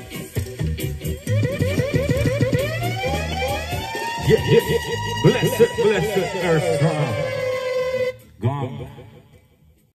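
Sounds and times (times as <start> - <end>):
reggae music: 0.0 - 9.9
pulsing bass line: 0.5 - 9.2
electronic siren effect chirps: 1.2 - 8.2.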